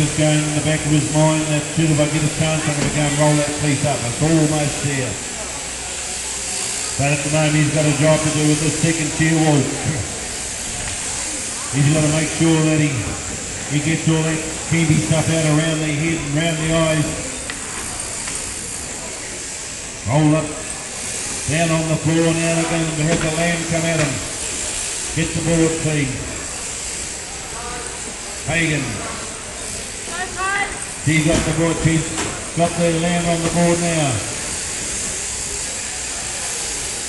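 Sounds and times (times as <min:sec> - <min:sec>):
electric shearing handpieces running: 0:00.0 - 0:37.0.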